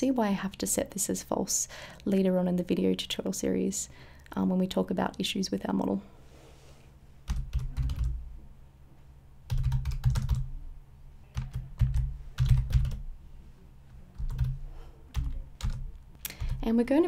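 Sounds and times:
computer keyboard typing: 7.3 - 8.2, 9.5 - 10.5, 11.3 - 13.0, 14.1 - 16.7.

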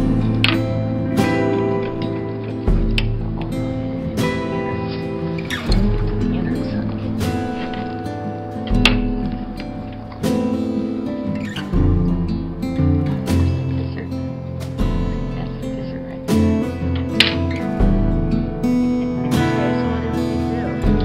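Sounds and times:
acoustic guitar strumming chords: 0.0 - 21.0.

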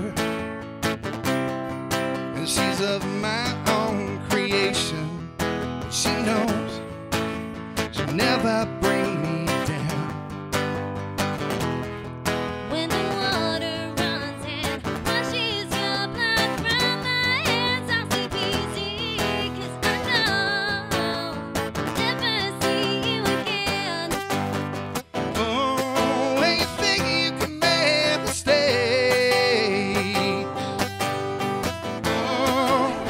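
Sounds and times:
acoustic guitar strumming: 0.0 - 33.0
person singing: 2.4 - 5.2, 5.9 - 6.9, 7.9 - 10.2, 12.7 - 24.3, 25.3 - 31.0, 32.0 - 33.0.

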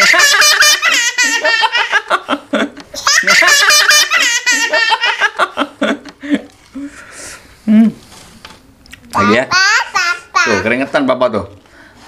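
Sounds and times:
children laughing: 0.0 - 6.5, 9.2 - 10.7.

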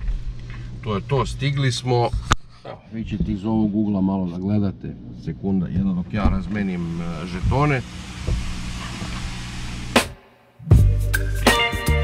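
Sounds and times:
car cabin hum: 3.0 - 10.0
music with drums and heavy bass: 9.9 - 12.0.

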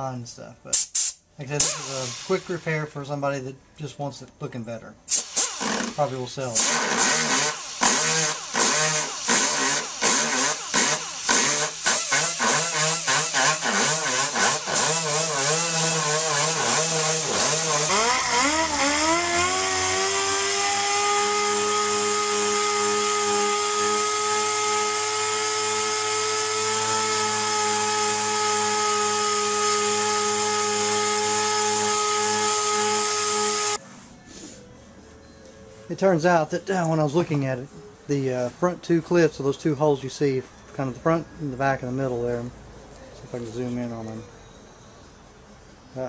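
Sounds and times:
rotary grinder whining: 6.6 - 33.8
sander whining: 6.6 - 33.8.

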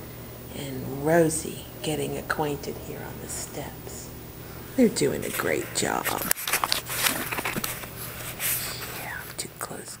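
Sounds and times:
woman whispering: 4.8 - 6.3, 8.7 - 10.0.

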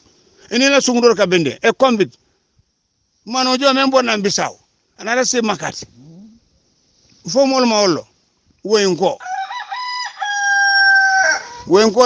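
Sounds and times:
rooster crowing: 9.2 - 11.9.

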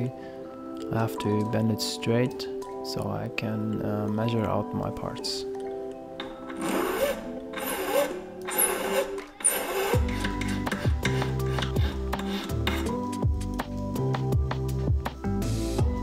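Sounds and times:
background music: 0.0 - 16.0
hand file strokes on metal: 6.6 - 13.0
deep music beat: 10.0 - 16.0.

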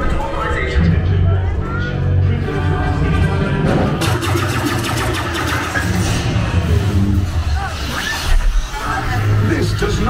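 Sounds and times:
sharp crackling effects: 4.0 - 9.4.

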